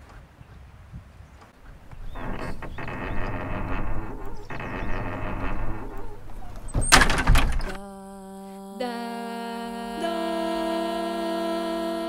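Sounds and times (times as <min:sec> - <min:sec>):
door banging: 0:01.6 - 0:07.8
wooden door creaking: 0:01.6 - 0:07.8.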